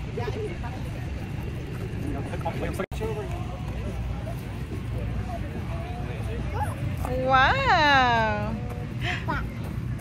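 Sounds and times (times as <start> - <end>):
indistinct talk: 0.0 - 10.0
steady low rumble: 0.0 - 10.0.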